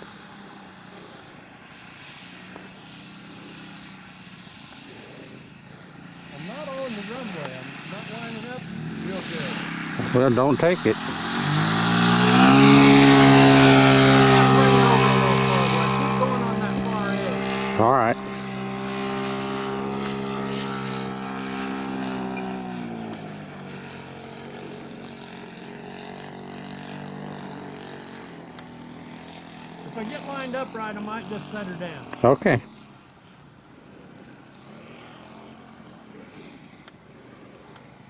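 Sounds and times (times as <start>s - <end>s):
model plane engine: 0.0s - 38.0s.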